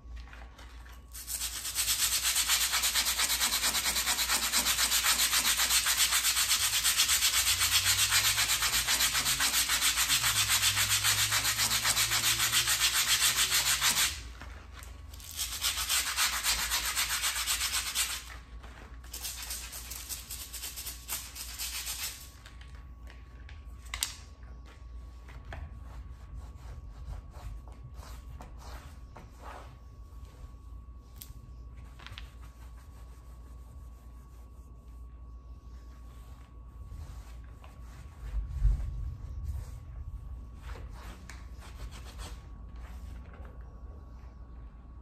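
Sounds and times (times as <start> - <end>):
hand brush scrubbing baseboard: 0.2 - 14.5, 15.2 - 22.3, 25.2 - 30.7, 31.5 - 43.3.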